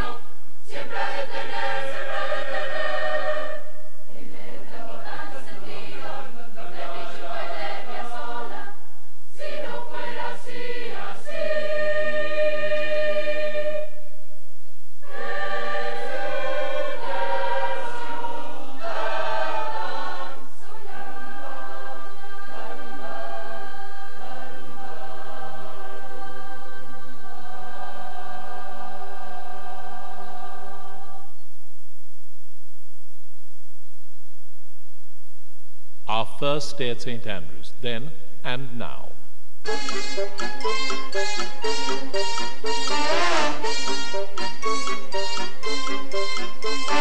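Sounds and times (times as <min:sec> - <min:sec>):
choir singing held chords: 0:00.0 - 0:14.2, 0:15.0 - 0:31.4, 0:39.6 - 0:47.0.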